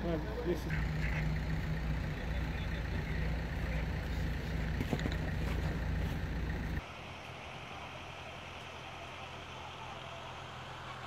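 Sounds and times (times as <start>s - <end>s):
engine idling: 0.0s - 11.0s
outdoor background noise: 0.0s - 11.0s.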